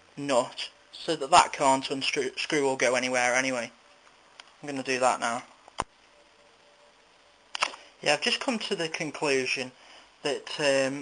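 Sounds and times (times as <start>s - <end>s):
sharp clicks: 7.5s - 7.8s.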